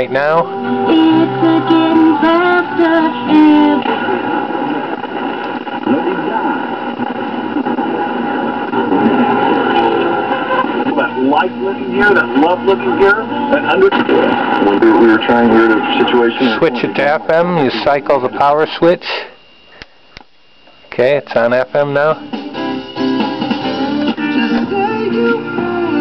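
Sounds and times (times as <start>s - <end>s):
music from car radio: 0.0s - 16.4s, 22.2s - 26.0s
garbled radio tuning noise: 0.0s - 26.0s
man talking on radio: 5.6s - 8.2s, 10.8s - 19.4s, 20.9s - 22.2s.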